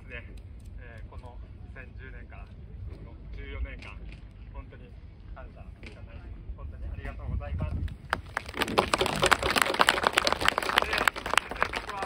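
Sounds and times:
sharp close hand claps: 7.9s - 12.0s
crowd applauding: 8.1s - 12.0s.

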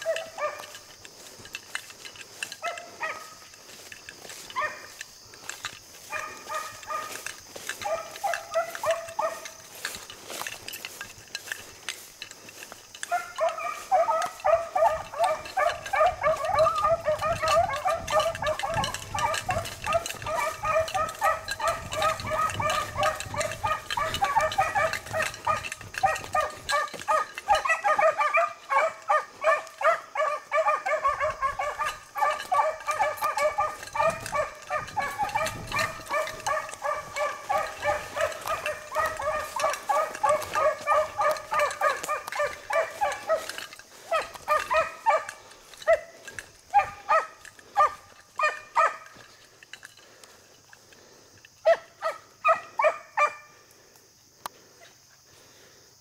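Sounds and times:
hounds baying: 0.0s - 55.8s.

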